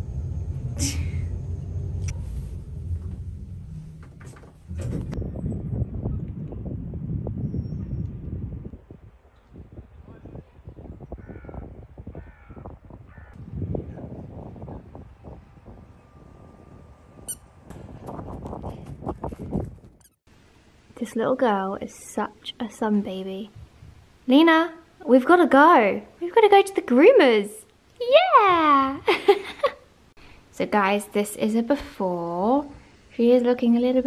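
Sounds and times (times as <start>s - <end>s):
low rumble: 0.0s - 9.0s, 12.9s - 20.0s.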